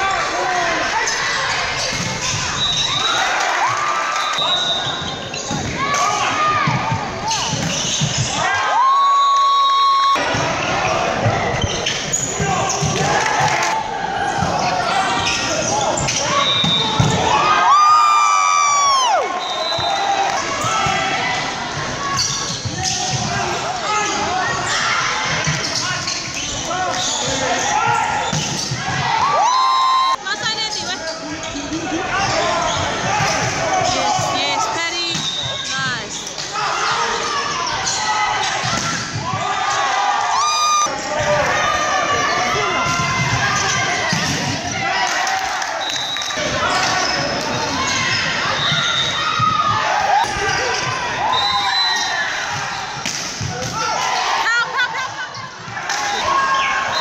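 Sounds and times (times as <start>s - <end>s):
people shouting: 0.0s - 9.1s, 31.9s - 34.8s.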